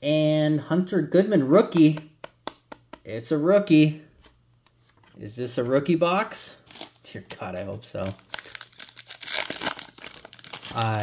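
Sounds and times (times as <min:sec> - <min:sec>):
foil wrapper crinkling and tearing: 0:06.6 - 0:11.0.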